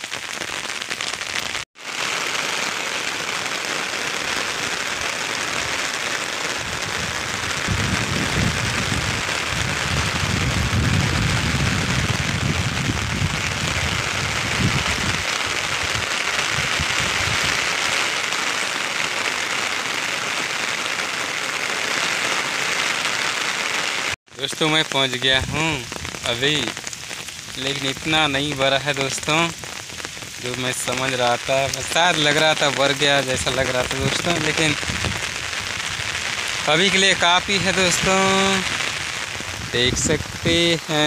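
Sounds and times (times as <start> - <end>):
heavy rain on umbrella: 0.0 - 41.0.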